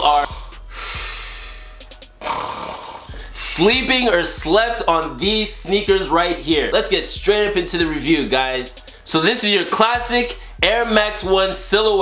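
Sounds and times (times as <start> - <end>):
background music: 0.0 - 12.0
person snoring: 0.3 - 3.4.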